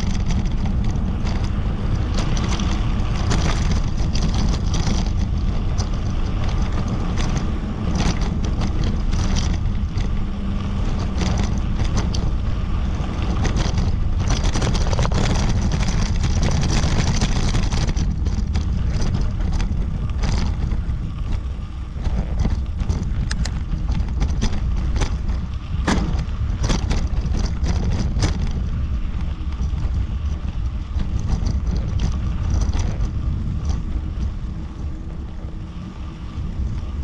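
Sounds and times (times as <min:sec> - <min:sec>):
bicycle clicks and rattles: 0:00.0 - 0:37.0
tyres rolling on dirt track: 0:00.0 - 0:37.0
wind over microphone: 0:00.0 - 0:37.0.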